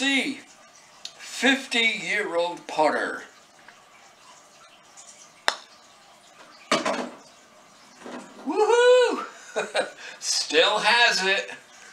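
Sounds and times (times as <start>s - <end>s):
putter striking golf ball: 5.4s - 5.7s
man exclaiming: 8.4s - 9.3s.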